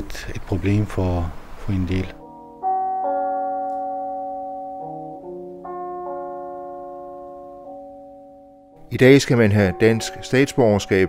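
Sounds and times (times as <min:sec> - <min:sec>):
slow piano chords: 0:02.0 - 0:11.0.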